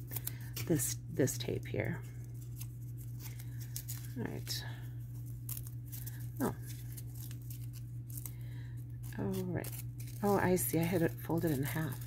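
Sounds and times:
low hum: 0:00.0 - 0:12.0
double-sided tape peeling: 0:05.2 - 0:08.4, 0:09.0 - 0:12.0.

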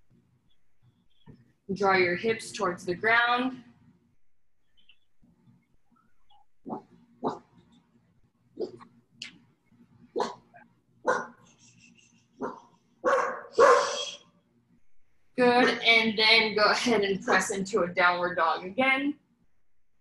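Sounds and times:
dog barking: 0:06.7 - 0:07.4, 0:10.2 - 0:10.5, 0:11.1 - 0:11.4, 0:12.4 - 0:14.0.

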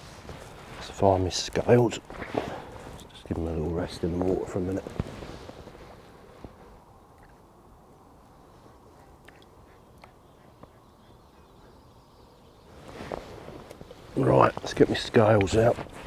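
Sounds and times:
outdoor background noise: 0:00.0 - 0:16.0
faint clicks: 0:09.2 - 0:10.8.

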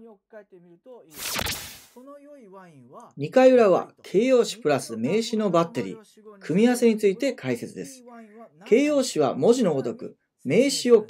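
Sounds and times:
whoosh sound effect: 0:01.2 - 0:02.0.

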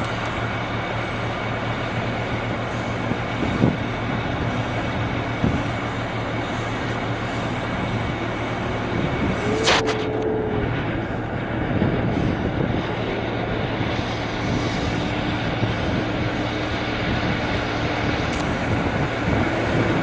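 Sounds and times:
vehicle engine running: 0:00.0 - 0:20.0
steady tone: 0:05.9 - 0:20.0
short sharp sound: 0:09.4 - 0:11.0.

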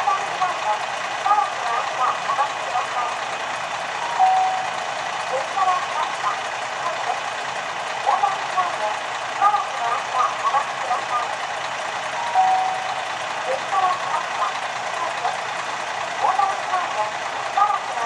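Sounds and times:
muffled public-address voice: 0:00.0 - 0:03.3, 0:05.2 - 0:07.3, 0:08.0 - 0:11.5, 0:13.4 - 0:15.6, 0:16.2 - 0:18.0
distant diesel railcar approaching: 0:00.0 - 0:18.0.

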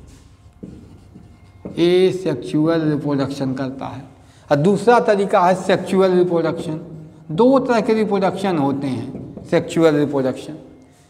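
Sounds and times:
marker writing on whiteboard: 0:00.0 - 0:02.5, 0:08.5 - 0:10.1
man speaking: 0:01.7 - 0:10.7.

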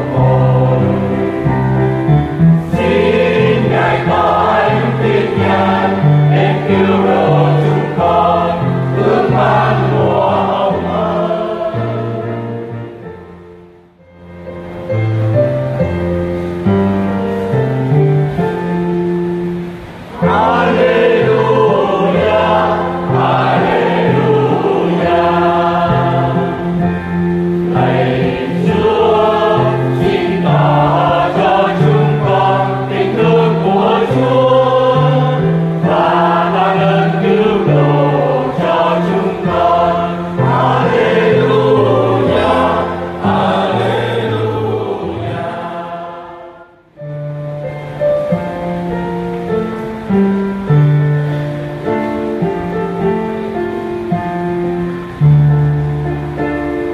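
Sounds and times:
church choir singing: 0:00.0 - 0:14.0, 0:19.5 - 0:47.0
instrumental accompaniment: 0:00.0 - 0:56.9.

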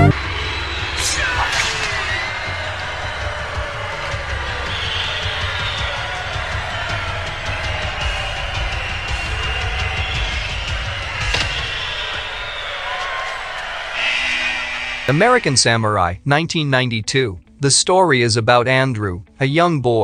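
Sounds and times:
low rumble: 0:00.0 - 0:00.4
action film music: 0:00.0 - 0:16.3.

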